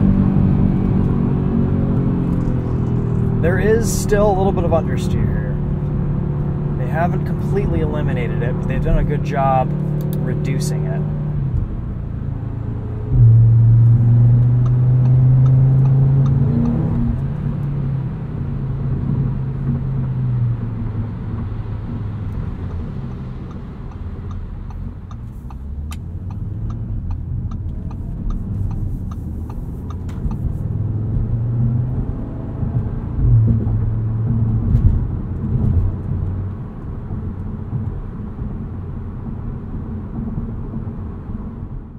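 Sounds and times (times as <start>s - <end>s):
car engine droning in cabin: 0.0s - 41.9s.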